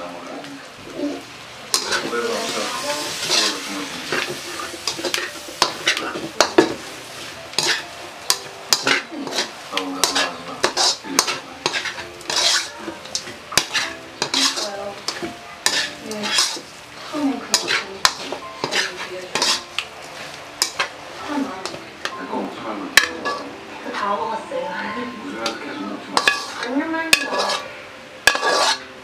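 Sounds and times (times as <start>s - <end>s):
frying sizzle: 0.0s - 29.0s
metal spatula scraping wok: 1.0s - 22.2s, 22.9s - 24.2s, 24.8s - 29.0s.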